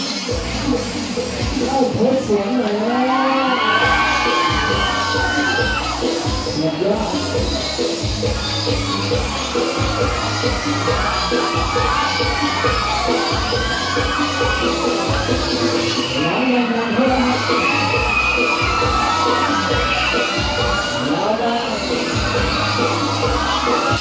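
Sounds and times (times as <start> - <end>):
loud music with steady beat: 0.0 - 24.0
riders screaming and shouting: 2.7 - 24.0.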